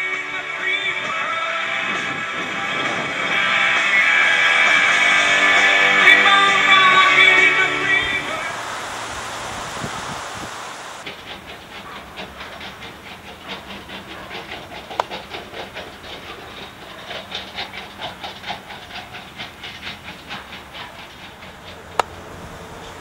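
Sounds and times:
heavy machinery engine hum: 0.9 - 23.0
rapid even clatter: 11.0 - 23.0.

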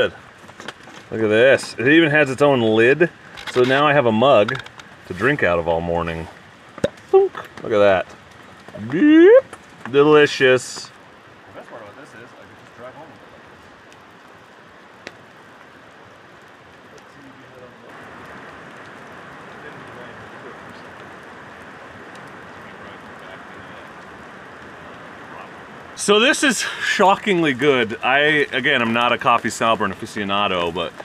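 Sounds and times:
rain falling: 0.0 - 31.0.

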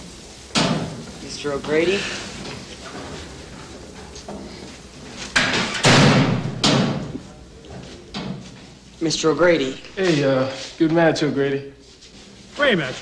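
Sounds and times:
low room noise: 0.0 - 13.0
loud bangs with hallway echo: 5.4 - 7.2.

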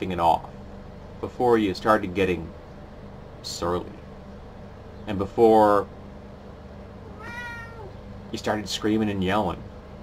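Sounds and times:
low room hum: 0.0 - 10.0
high-pitched animal cry: 7.0 - 8.0.

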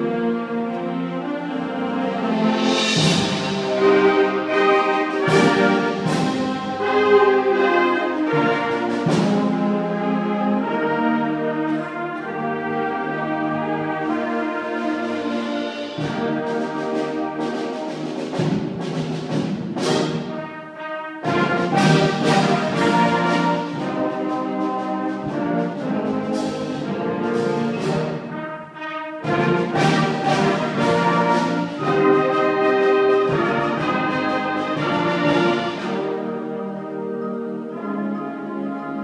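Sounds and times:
symphonic band playing: 0.0 - 39.0.

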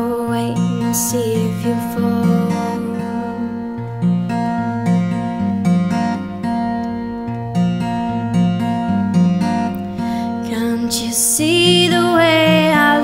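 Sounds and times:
acoustic guitar strumming chords: 0.0 - 13.0.

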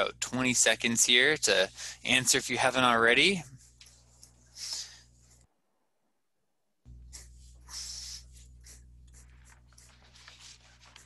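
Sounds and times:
low electrical hum: 0.0 - 6.0, 6.8 - 11.0.

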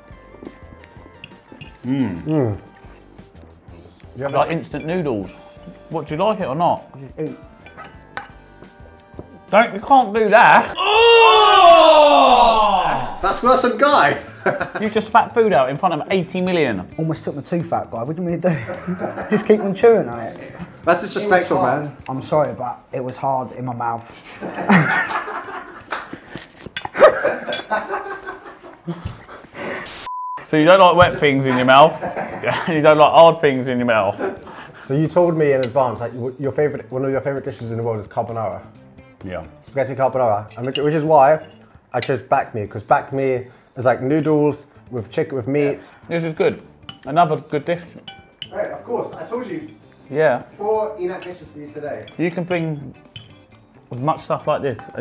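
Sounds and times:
quiet background music: 0.0 - 29.8, 30.4 - 55.0
cutlery clinking on dishes: 1.1 - 1.8, 4.3 - 5.8, 7.2 - 9.3, 24.4 - 27.9, 40.5 - 42.3, 46.7 - 50.0, 51.2 - 55.0
men laughing: 10.3 - 15.2, 18.5 - 20.8, 24.2 - 29.5, 31.2 - 33.0, 33.9 - 35.1.

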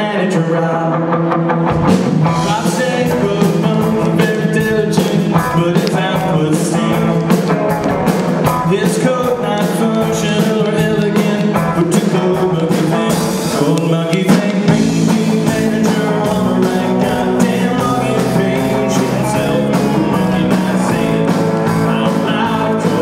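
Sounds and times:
man singing: 0.0 - 1.2, 2.2 - 23.0
rock band playing: 0.0 - 23.0.

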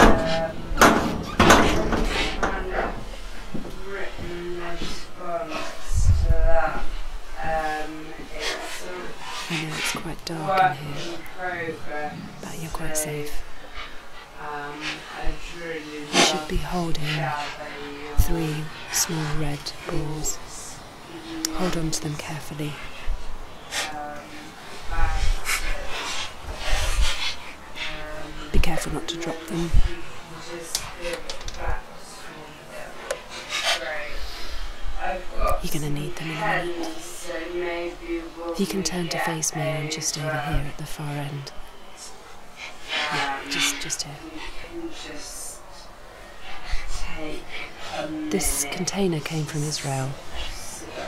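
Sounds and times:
microphone handling noise: 5.9 - 6.5
person speaking: 9.5 - 13.4, 16.1 - 20.8, 21.4 - 22.8, 27.9 - 31.4, 35.5 - 37.0, 38.5 - 41.5, 43.4 - 44.2, 48.0 - 50.9.

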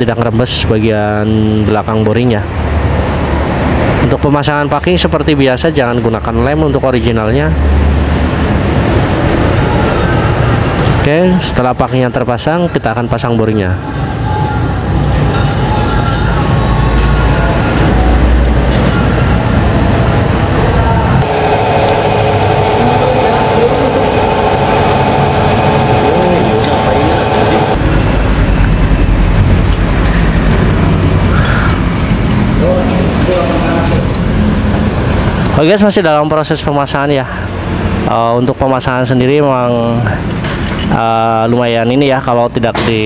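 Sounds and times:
motor vehicles running: 2.1 - 11.6, 13.7 - 35.8, 39.2 - 41.6
steady humming tone: 13.8 - 35.5
voices: 20.6 - 28.2.

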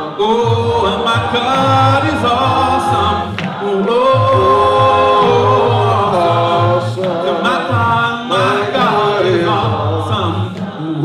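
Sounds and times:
a cappella gospel singing: 0.0 - 11.0.

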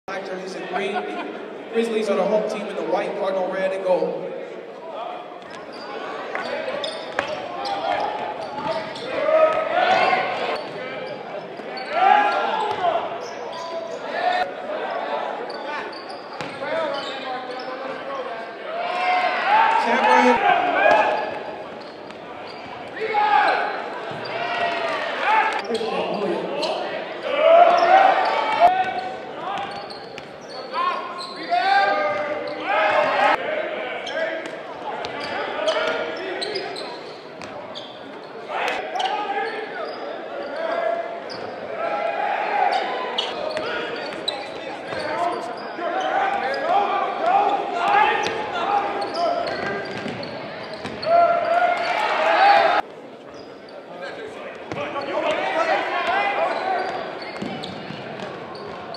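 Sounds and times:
players and spectators shouting: 5.7 - 37.0, 37.8 - 52.8, 54.8 - 58.6.

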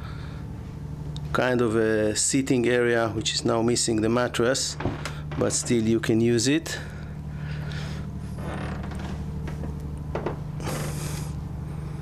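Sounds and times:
low machinery hum: 0.0 - 12.0.

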